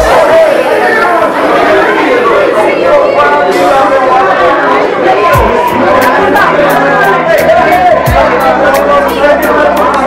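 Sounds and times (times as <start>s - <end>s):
congregation voices overlapping: 0.0s - 10.0s.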